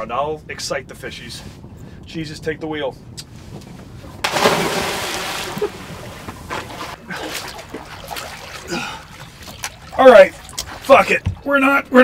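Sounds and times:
water rushing and sloshing: 4.0s - 12.0s
big splash into water: 4.2s - 8.7s.

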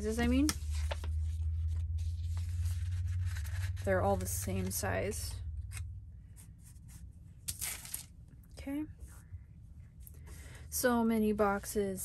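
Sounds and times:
paper rustling: 0.0s - 4.8s
low steady hum: 0.0s - 12.0s.

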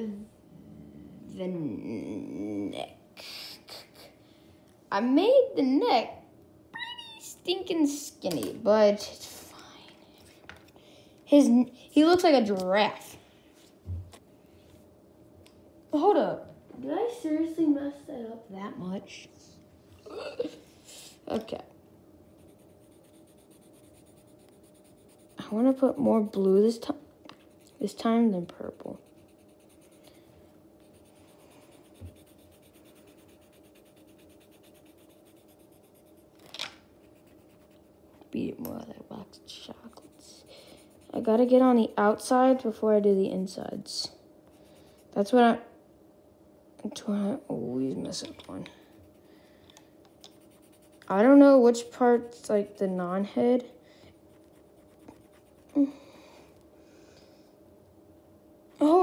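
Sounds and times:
pencil scratching on paper: 22.3s - 26.6s, 27.4s - 30.2s, 30.8s - 36.3s, 37.0s - 38.0s, 39.8s - 41.8s, 50.2s - 51.4s, 54.3s - 55.7s.

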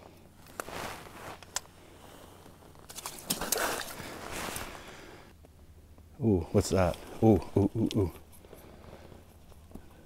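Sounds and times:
jacket fabric rustling: 0.5s - 5.2s.

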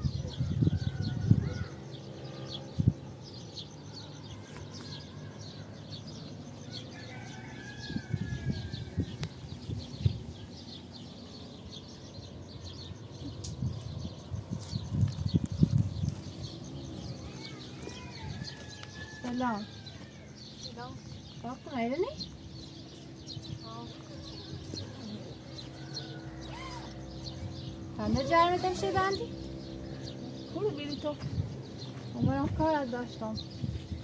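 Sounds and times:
birds chirping: 0.0s - 34.0s.

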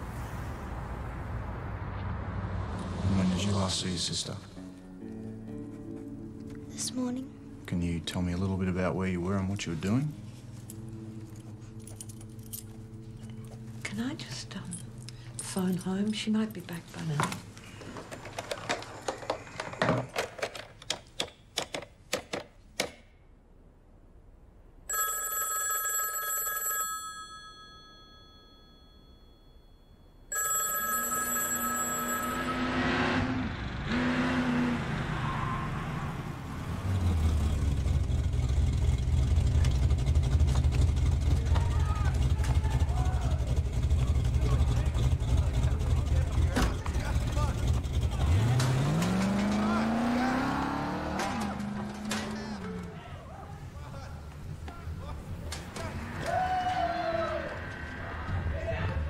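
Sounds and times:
landline telephone ringing: 24.9s - 32.8s
car engine droning and revving: 32.3s - 53.0s.

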